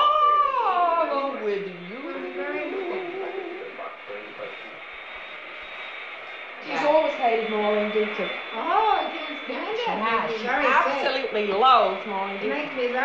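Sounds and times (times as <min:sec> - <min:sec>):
woman talking: 0:00.0 - 0:03.1, 0:06.6 - 0:13.0
quieter talking: 0:00.0 - 0:04.8, 0:06.6 - 0:13.0.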